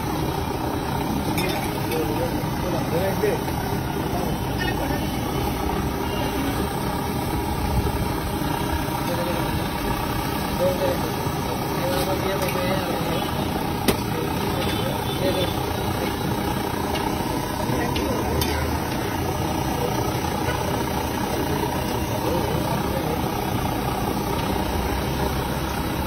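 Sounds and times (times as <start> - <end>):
low street rumble: 0.0 - 26.0.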